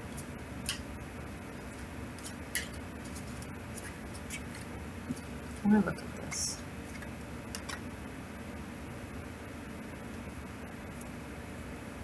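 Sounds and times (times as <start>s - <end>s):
low room hum: 0.0s - 12.0s
cards being shuffled: 1.8s - 5.4s.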